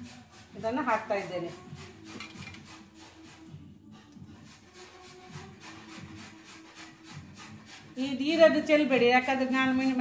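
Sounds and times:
chillies scraping against steel bowl: 0:00.8 - 0:03.5.

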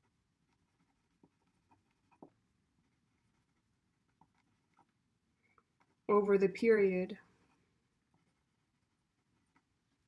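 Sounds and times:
pen scratching on paper: 0:00.0 - 0:05.0, 0:07.4 - 0:10.0
person speaking: 0:06.0 - 0:07.4.

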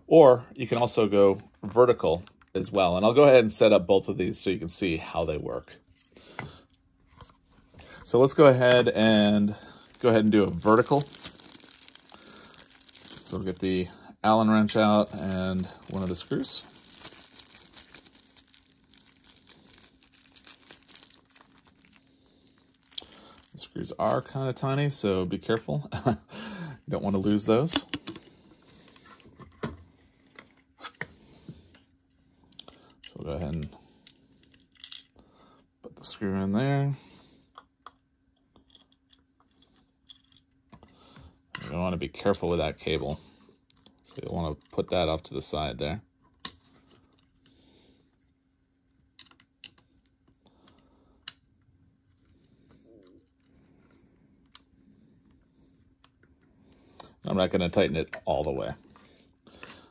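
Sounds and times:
soft handling noises: 0:05.8 - 0:25.7.

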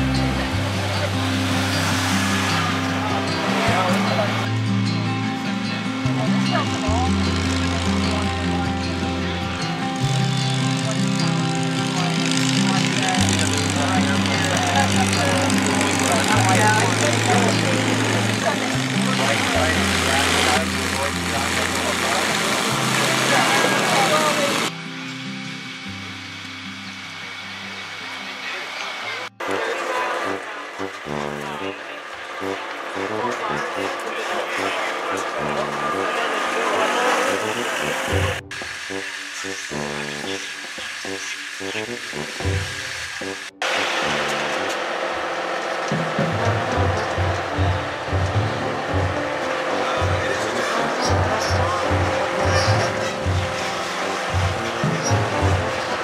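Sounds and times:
background music with bass line: 0:00.0 - 0:28.5, 0:29.3 - 0:56.0.

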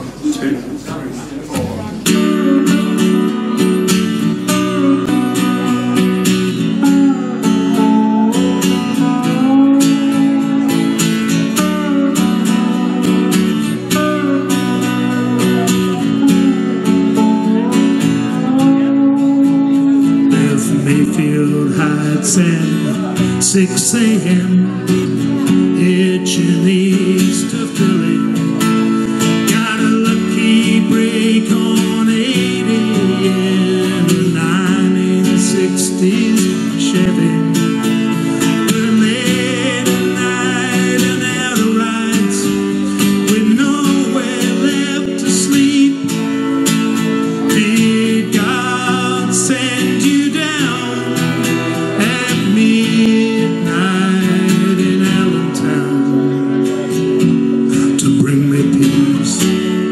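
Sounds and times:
strummed acoustic guitar: 0:00.0 - 0:59.9
steel guitar sliding melody: 0:01.9 - 0:59.9.

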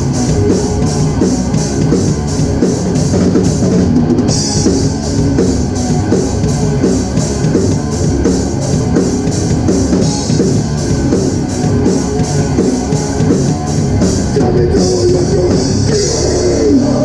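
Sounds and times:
punk band playing live: 0:00.0 - 0:17.0.

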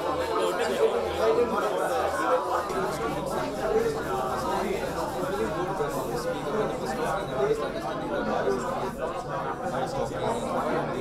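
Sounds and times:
babble of overlapping conversations: 0:00.0 - 0:11.0.

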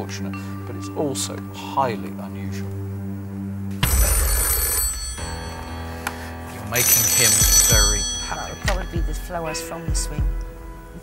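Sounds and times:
low music bed: 0:00.0 - 0:11.0
telephone bell ringing: 0:03.8 - 0:06.0, 0:06.6 - 0:09.3.

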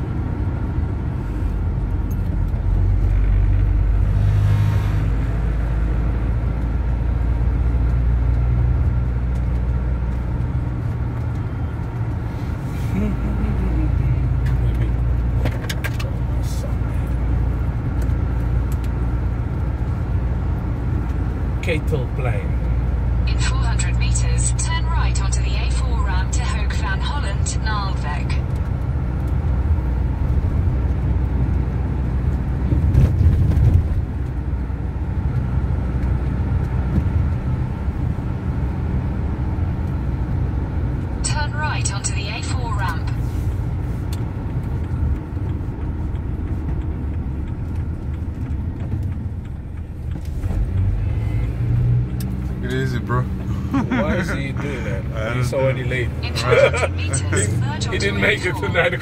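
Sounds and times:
car engine and road rumble: 0:00.0 - 0:59.0.

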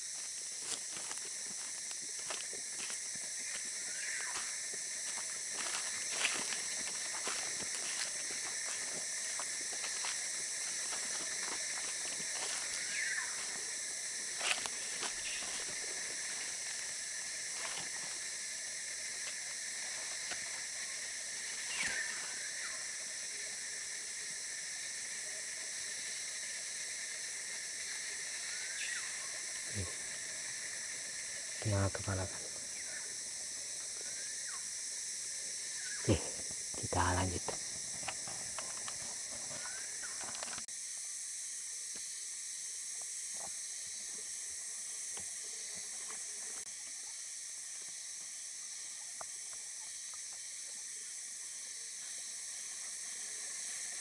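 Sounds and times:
footsteps on dry leaves: 0:00.0 - 0:20.8
insects chorus: 0:00.0 - 0:54.0.

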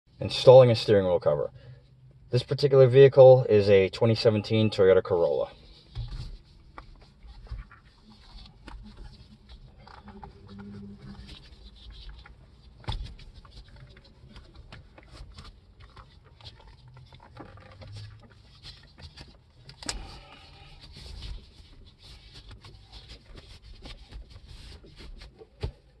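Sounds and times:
leather cover rubbing and creaking: 0:03.7 - 0:26.0.

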